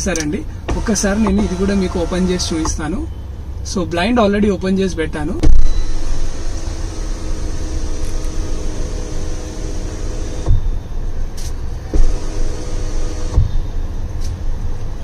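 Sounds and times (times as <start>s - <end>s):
sunroof motor whirring: 0.0s - 2.8s, 5.5s - 14.0s
sunroof stopping with a thump: 11.4s - 13.6s.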